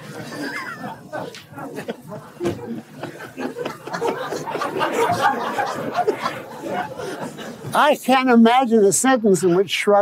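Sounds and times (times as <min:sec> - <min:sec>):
audience laughing and murmuring: 0:00.0 - 0:08.0.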